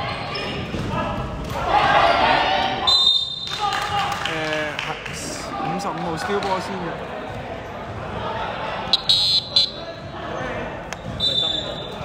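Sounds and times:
court noise: 0.0s - 12.0s
referee's whistle blast: 2.8s - 3.5s, 8.9s - 9.8s, 11.2s - 12.0s.

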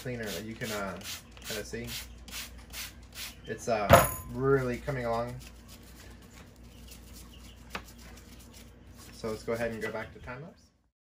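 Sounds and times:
brush scrubbing metal fins: 4.6s - 10.0s.

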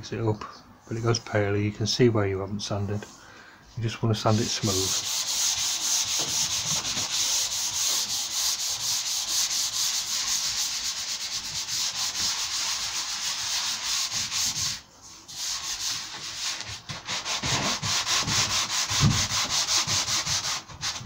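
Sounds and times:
sanding block rubbing strokes: 4.4s - 21.0s.

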